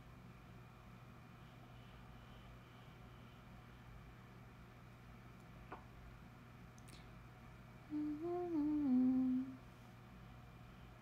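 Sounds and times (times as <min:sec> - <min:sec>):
woman humming: 0:07.9 - 0:09.6.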